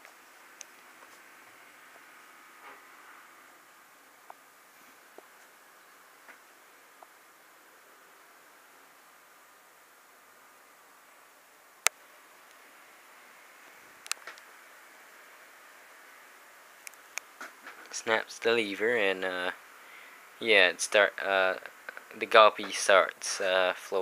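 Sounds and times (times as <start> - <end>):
room hiss: 0.0 - 24.0.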